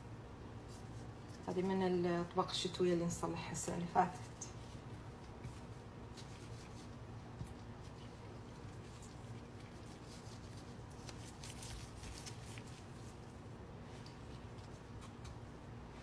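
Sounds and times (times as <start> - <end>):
steady low hum: 0.0 - 16.0
rustling of gloved hands: 4.5 - 16.0.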